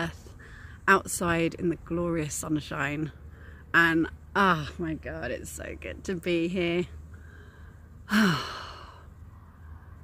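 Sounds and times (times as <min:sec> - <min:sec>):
woman sighing: 0:08.0 - 0:09.1.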